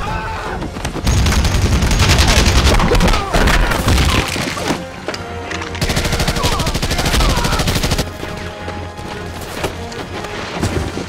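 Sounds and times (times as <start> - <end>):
orchestral film score: 0.0 - 11.0.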